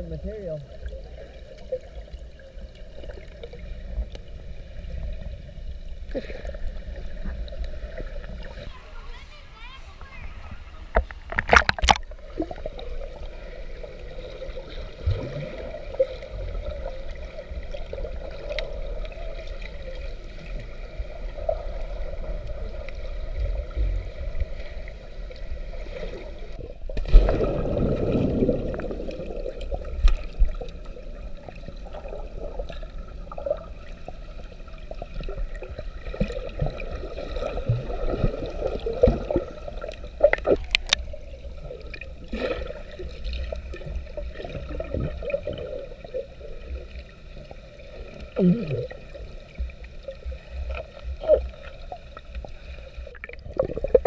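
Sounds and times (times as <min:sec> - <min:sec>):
muffled underwater water sloshing: 0:00.0 - 0:54.0
rush of water: 0:06.1 - 0:45.9
sharp splashes: 0:11.3 - 0:12.2.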